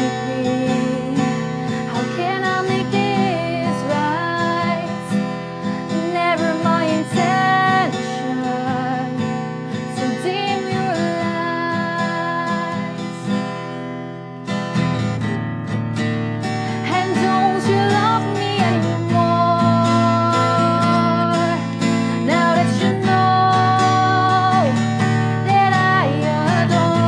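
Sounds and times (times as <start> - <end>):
woman singing: 0.0 - 13.6, 16.7 - 27.0
strummed acoustic guitar: 0.0 - 27.0.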